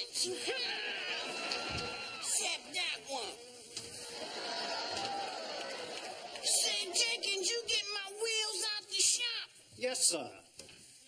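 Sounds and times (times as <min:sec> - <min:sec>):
audience laughing: 0:00.3 - 0:02.3, 0:04.0 - 0:07.6.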